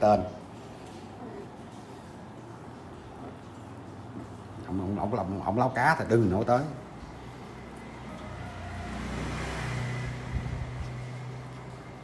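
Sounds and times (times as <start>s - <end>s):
low motor hum: 7.1s - 12.0s.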